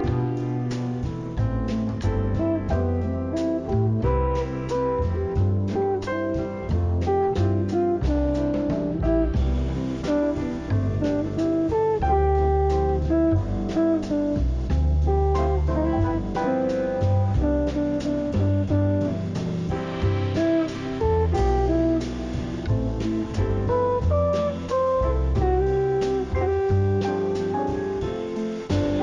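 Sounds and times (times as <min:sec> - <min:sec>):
low bass line: 0:00.0 - 0:29.0
plucked jazz guitar: 0:00.0 - 0:29.0.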